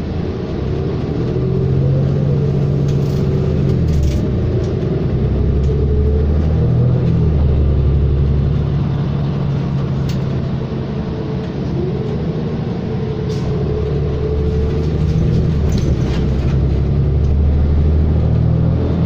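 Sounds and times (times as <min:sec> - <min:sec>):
bus diesel engine accelerating: 0:00.0 - 0:19.0.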